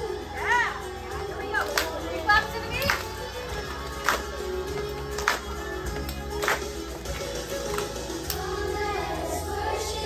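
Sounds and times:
hand claps: 0:01.6 - 0:02.0, 0:02.8 - 0:08.5.

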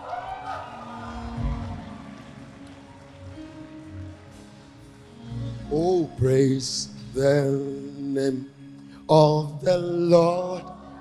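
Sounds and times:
person chanting: 0:05.6 - 0:11.0.

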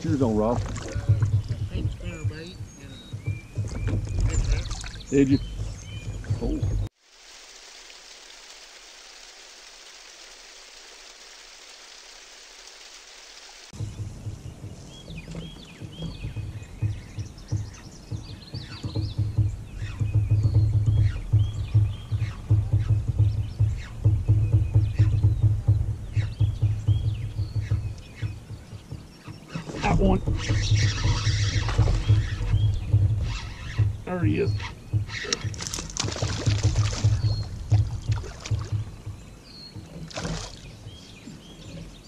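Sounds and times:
birds chirping and singing: 0:00.0 - 0:06.9, 0:13.8 - 0:42.0
low fluttering river rumble: 0:00.0 - 0:42.0
steady hiss: 0:06.9 - 0:14.9.

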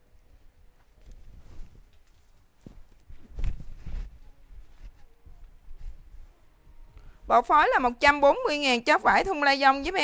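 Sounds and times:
footsteps on tiled floor: 0:00.3 - 0:07.4.

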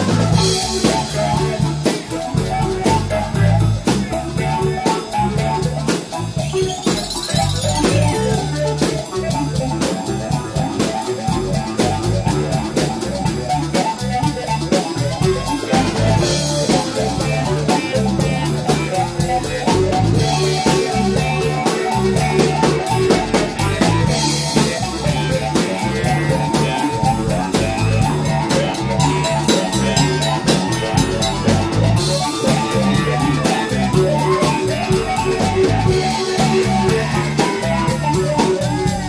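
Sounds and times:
drum kit beat: 0:00.0 - 0:39.0
electric guitar: 0:00.0 - 0:39.0.

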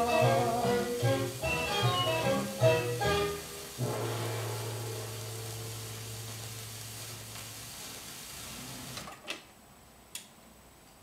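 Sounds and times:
record surface hiss: 0:00.0 - 0:11.0.

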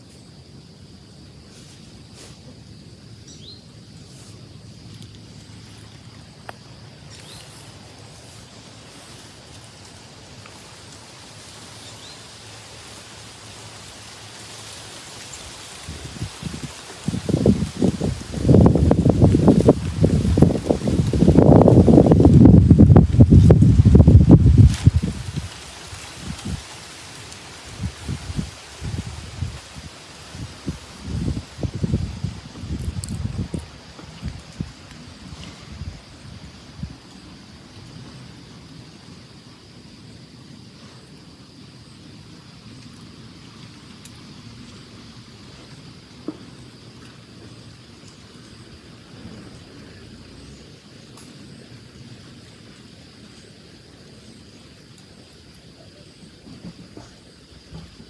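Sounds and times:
wind buffeting microphone: 0:15.8 - 0:26.7, 0:27.7 - 0:37.6.

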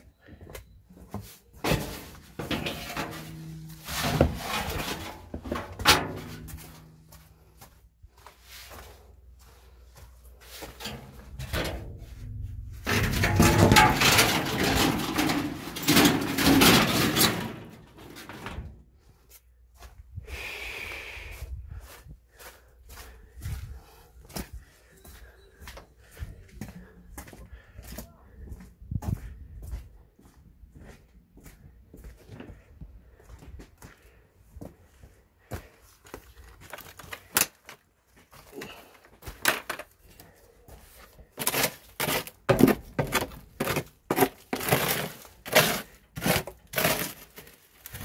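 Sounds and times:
dense rustling and scraping: 0:01.1 - 0:07.6, 0:08.3 - 0:19.1, 0:41.0 - 0:48.0
knocks and clatter: 0:10.8 - 0:18.8.

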